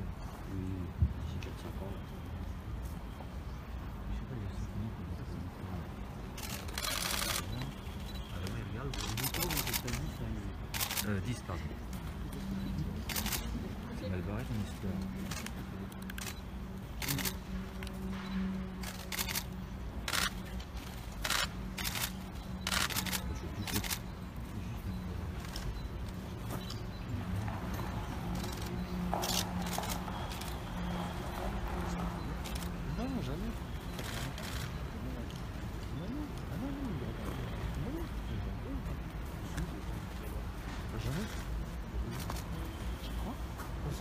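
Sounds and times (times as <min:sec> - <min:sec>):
indistinct voices murmuring: 0:04.0 - 0:44.0
camera shutters clicking: 0:06.4 - 0:07.7, 0:13.1 - 0:13.5, 0:17.0 - 0:17.4, 0:18.8 - 0:19.5, 0:20.1 - 0:24.0.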